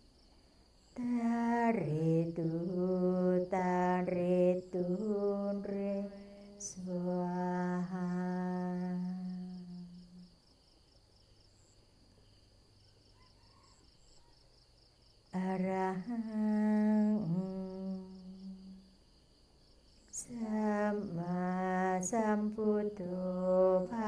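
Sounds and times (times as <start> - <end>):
person humming a chant: 1.0 - 10.3, 15.4 - 18.9, 20.1 - 24.0.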